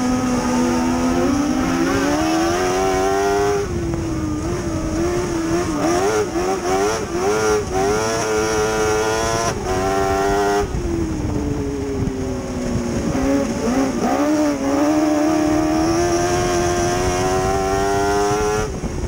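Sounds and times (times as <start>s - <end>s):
race car engine revving: 0.0s - 19.0s.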